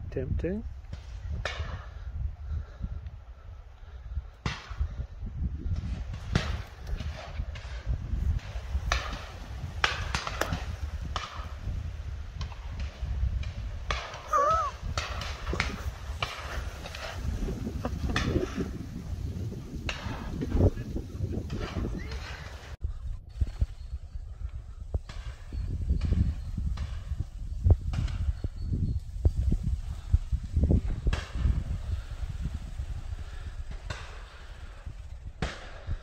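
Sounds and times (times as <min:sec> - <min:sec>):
wind rumble on microphone: 0:00.0 - 0:36.0.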